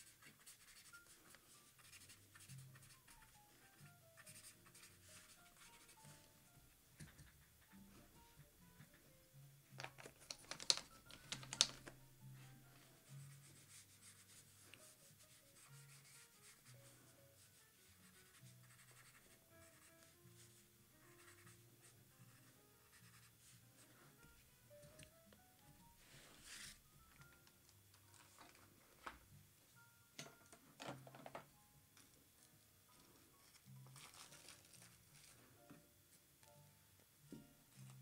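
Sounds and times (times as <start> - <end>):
brush scratching across paper: 0.0 - 6.2, 13.0 - 20.6, 26.2 - 26.8
soft background music: 0.0 - 38.0.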